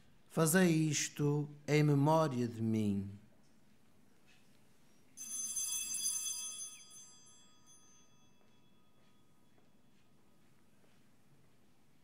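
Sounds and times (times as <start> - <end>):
altar bell ringing: 5.2 - 10.4.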